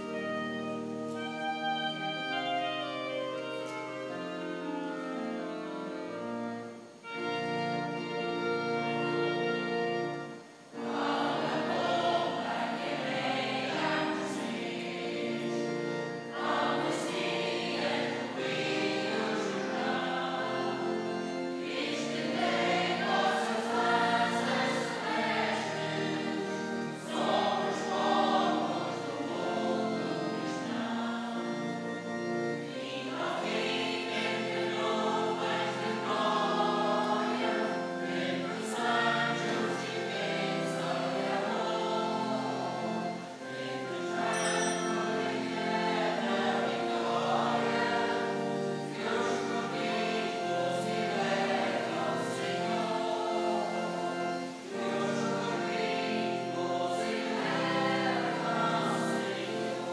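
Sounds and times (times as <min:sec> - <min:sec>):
choir singing a hymn: 0:00.0 - 0:59.9
musical accompaniment: 0:00.0 - 0:59.9.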